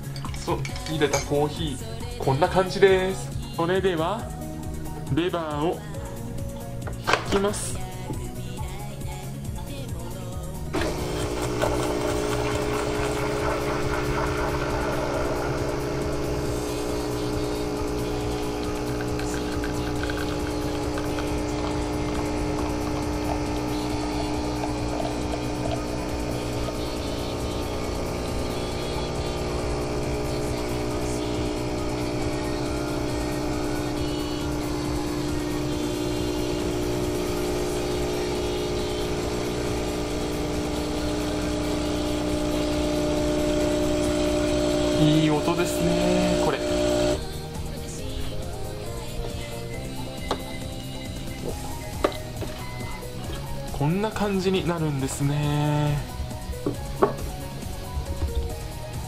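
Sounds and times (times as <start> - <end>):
coffee machine motor and pump hum: 0.0 - 9.3, 10.4 - 59.0.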